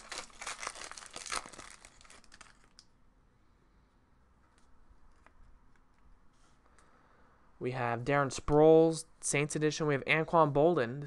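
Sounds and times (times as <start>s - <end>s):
wrapper tearing and crinkling: 0.0s - 2.8s.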